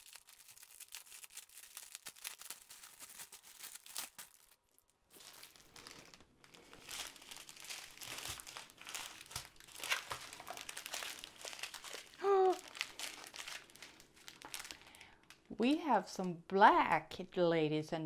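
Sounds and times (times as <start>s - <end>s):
plastic packaging crinkling: 0.0s - 16.0s.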